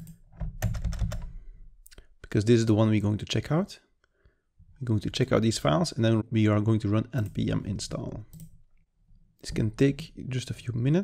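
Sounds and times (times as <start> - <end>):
computer keyboard keys clicking: 0.0 - 1.3.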